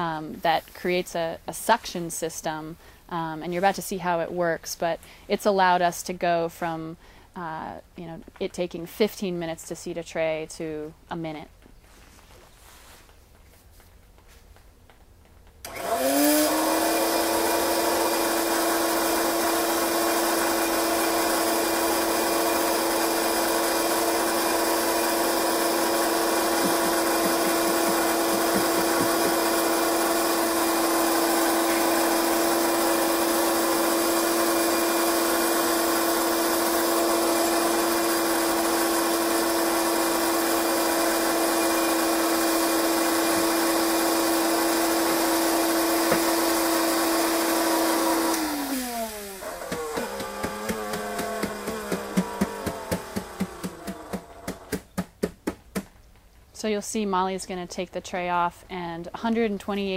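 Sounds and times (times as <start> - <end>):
vacuum cleaner motor running: 15.7 - 54.9.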